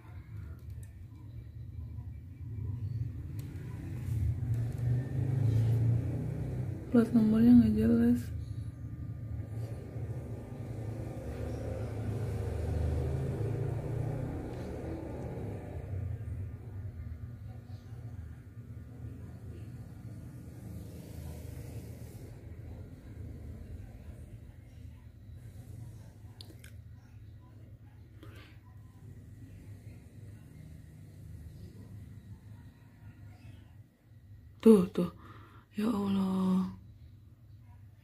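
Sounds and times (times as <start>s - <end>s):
steady low hum: 0.0s - 38.0s
vehicle passing rumble: 1.9s - 33.5s.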